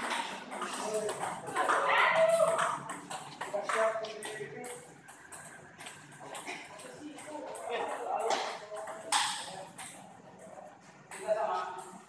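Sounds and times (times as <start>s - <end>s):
table tennis balls ticking: 0.0s - 12.0s.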